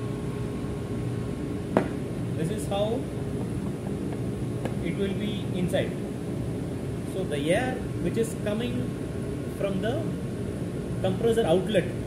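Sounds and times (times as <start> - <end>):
machinery and ventilation hum: 0.0 - 12.0.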